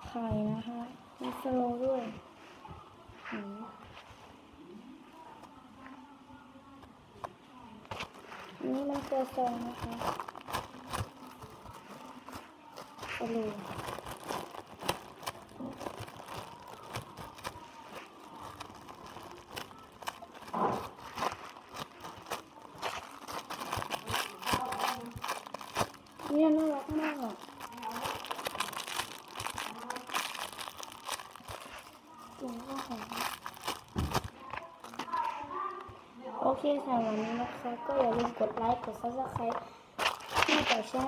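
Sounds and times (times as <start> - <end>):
plastic packaging crinkling: 7.9 - 35.8, 40.0 - 41.0.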